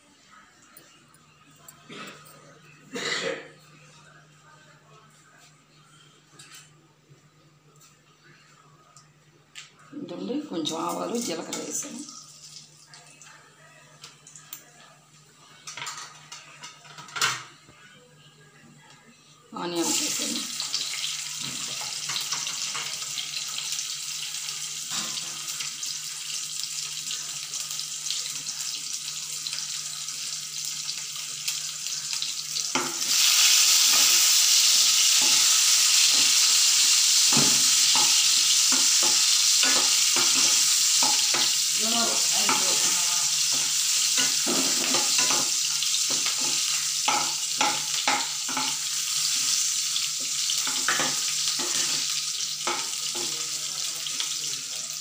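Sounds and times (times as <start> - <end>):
onion sizzling in hot oil: 19.6 - 55.0.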